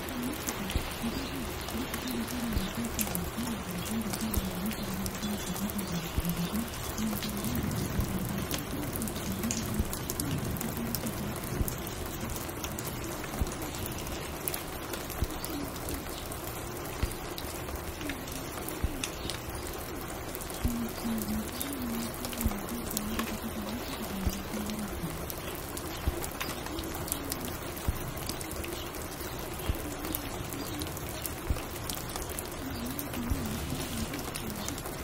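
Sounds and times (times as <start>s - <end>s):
small clicks and crackles: 0.0s - 35.0s
steady rain: 0.0s - 35.0s.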